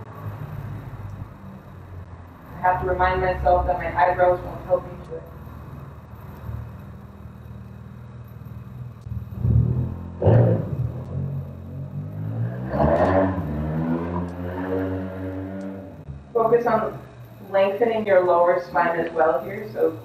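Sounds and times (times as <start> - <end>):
vehicle engine passing: 0.0 - 17.3
low steady hum: 0.0 - 20.0.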